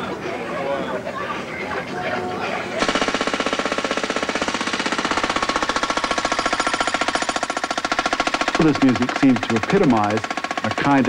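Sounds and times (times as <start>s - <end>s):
jackhammer breaking concrete: 2.8s - 11.0s.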